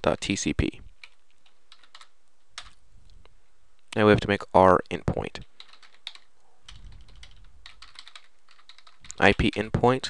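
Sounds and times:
faint steady hiss: 0:00.0 - 0:10.0
computer keyboard keystrokes: 0:01.0 - 0:02.8, 0:04.8 - 0:09.6.

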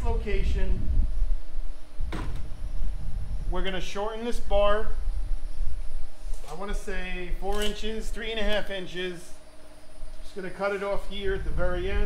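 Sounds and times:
faint hum: 0:00.0 - 0:12.0
low steady rumble: 0:00.0 - 0:12.0.

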